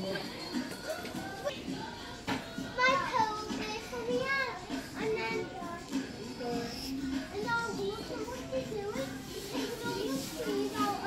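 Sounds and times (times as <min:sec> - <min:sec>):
children talking and calling out: 0:00.7 - 0:11.0.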